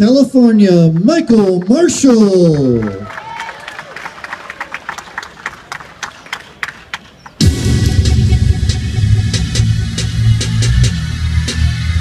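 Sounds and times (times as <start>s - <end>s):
audience clapping: 0.8s - 7.4s
loud music with heavy bass beat: 7.4s - 12.0s.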